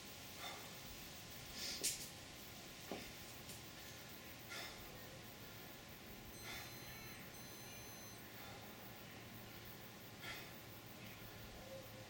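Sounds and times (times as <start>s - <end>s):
faint background hiss: 0.0s - 12.0s
high-pitched electronic beeps: 6.4s - 8.2s.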